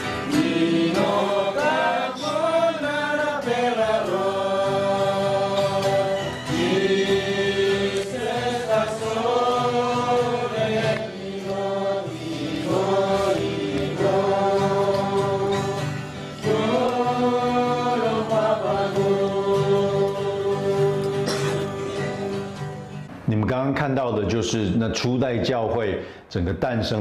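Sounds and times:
person singing chant-like melody: 0.0s - 22.7s.

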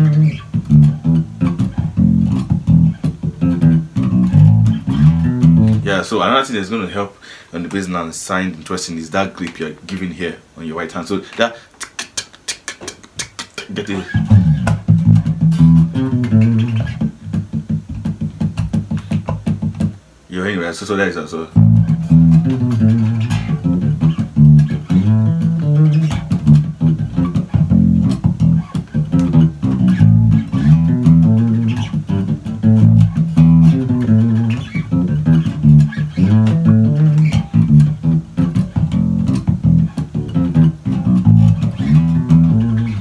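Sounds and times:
fingerstyle electric bass line: 0.0s - 6.1s, 12.9s - 20.0s, 21.5s - 43.0s.

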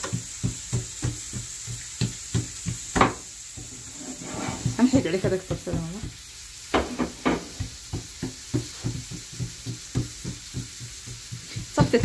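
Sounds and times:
hands patting dough: 0.0s - 3.0s, 4.7s - 12.0s.

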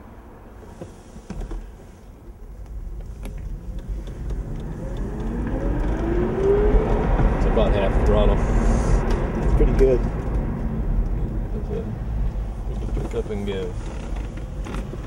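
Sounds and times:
tyre and road rumble: 0.6s - 15.0s.

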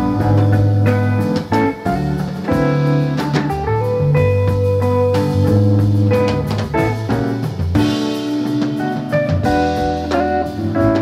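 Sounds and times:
drum hits: 0.0s - 11.0s
electric guitar: 0.0s - 11.0s
jazz fusion band playing: 0.0s - 11.0s
steady bass line: 0.0s - 11.0s.

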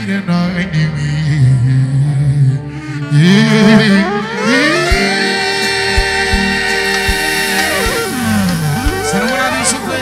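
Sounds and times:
sliding lead melody: 0.0s - 10.0s
low drum thumps: 4.8s - 9.8s.

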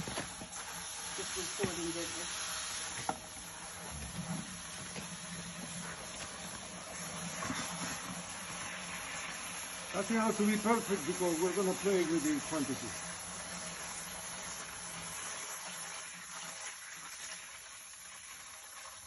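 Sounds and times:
hose water running into bucket: 0.0s - 19.0s.

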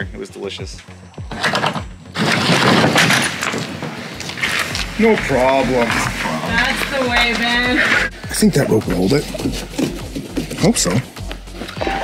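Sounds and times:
plastic kayak scraping and knocking: 8.7s - 11.8s.

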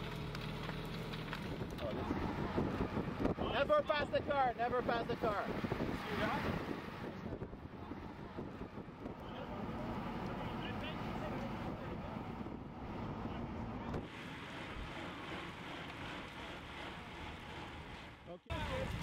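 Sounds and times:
vehicle rumble: 0.0s - 19.0s
wind buffeting microphone: 1.4s - 19.0s.

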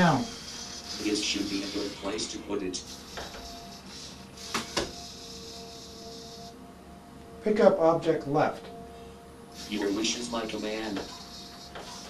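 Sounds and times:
servos whirring with high whine: 0.0s - 12.0s.

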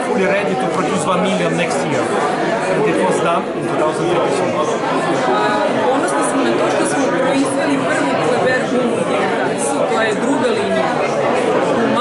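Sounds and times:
room chatter: 0.0s - 12.0s.

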